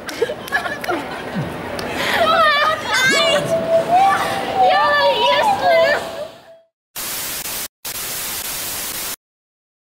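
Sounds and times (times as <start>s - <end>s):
tv static hiss: 7.0s - 9.2s.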